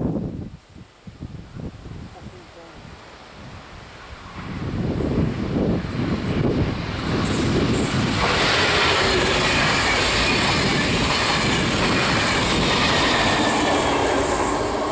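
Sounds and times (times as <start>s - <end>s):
train passing at speed: 4.0s - 14.9s.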